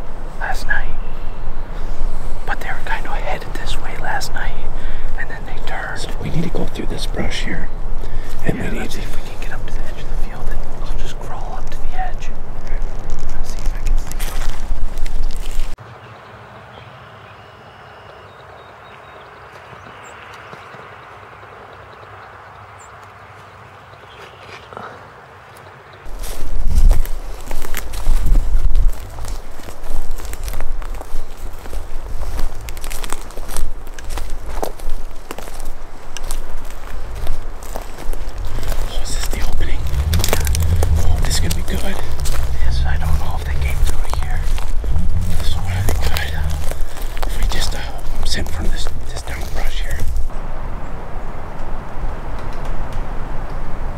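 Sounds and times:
low rumble: 5.2s - 11.0s, 26.1s - 53.9s
brush rustling: 12.4s - 15.8s, 26.1s - 50.3s
footsteps through dry leaves: 14.1s - 15.8s, 26.1s - 50.3s.

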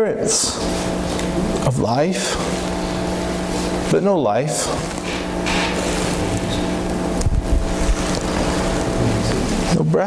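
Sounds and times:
low tone drone: 0.4s - 9.8s.

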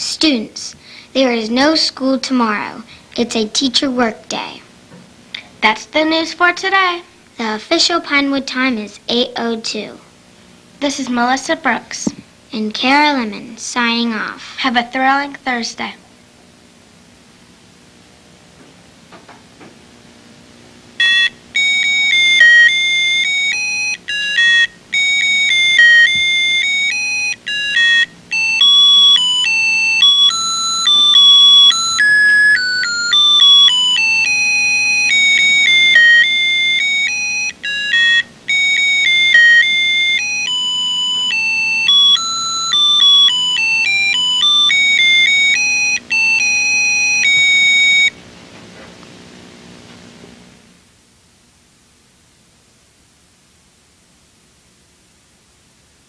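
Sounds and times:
electronic beeping tune: 21.0s - 48.1s.

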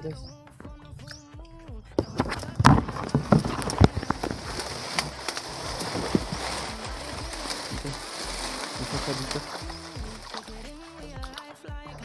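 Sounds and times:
dry leaves crackling and rustling: 2.2s - 11.2s.

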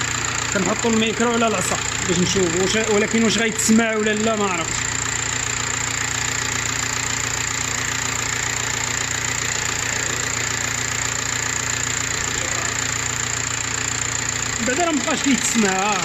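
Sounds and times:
car engine idling: 0.0s - 16.0s.

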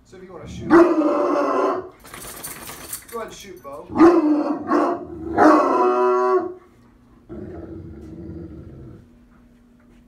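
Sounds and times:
dog baying: 3.9s - 6.6s
dog low rumble: 7.2s - 9.6s.

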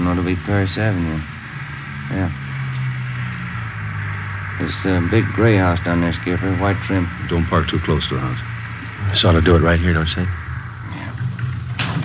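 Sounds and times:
car engine drone: 0.0s - 12.0s.

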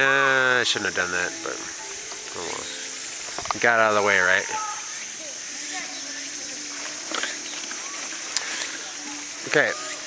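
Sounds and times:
insects droning: 0.0s - 10.0s.

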